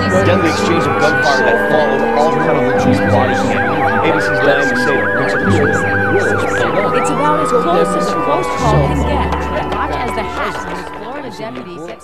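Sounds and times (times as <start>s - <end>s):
emergency sirens yelping and wailing: 0.0s - 12.0s
music: 0.0s - 12.0s.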